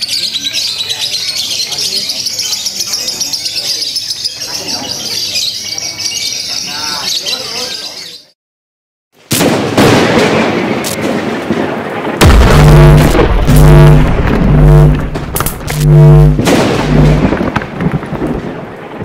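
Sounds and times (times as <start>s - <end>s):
thunder-like rumble with sharp cracks: 9.8s - 19.0s
low pulsing electric buzz: 12.2s - 17.3s
heavy bass booms: 12.2s - 17.5s.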